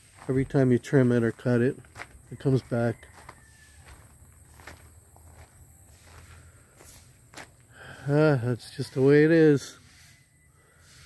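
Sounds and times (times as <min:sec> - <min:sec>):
footsteps on gravel: 0:00.0 - 0:08.1.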